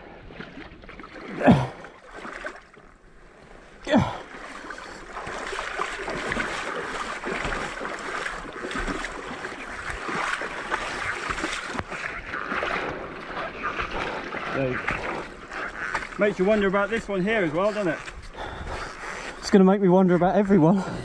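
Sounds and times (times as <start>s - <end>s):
water sloshing and splashing: 0.0s - 21.0s.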